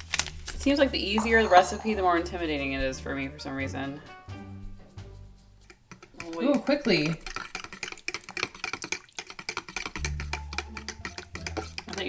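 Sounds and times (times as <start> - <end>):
background music: 0.0 - 7.2, 9.9 - 12.0.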